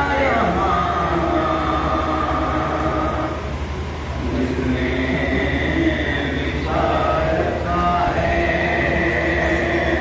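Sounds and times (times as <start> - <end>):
man singing through loudspeakers: 0.0 - 3.5, 4.2 - 10.0
steady low hum: 0.0 - 10.0.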